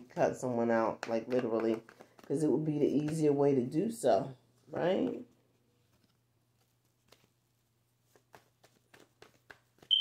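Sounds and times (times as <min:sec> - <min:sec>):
cards clicking and tapping: 0:00.8 - 0:03.4, 0:05.9 - 0:07.3, 0:08.0 - 0:10.0.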